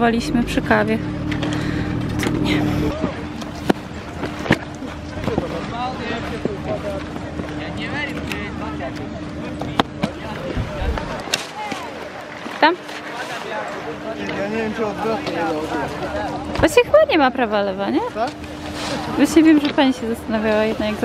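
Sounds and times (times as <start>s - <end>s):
distant voices of skiers: 18.1s - 21.0s.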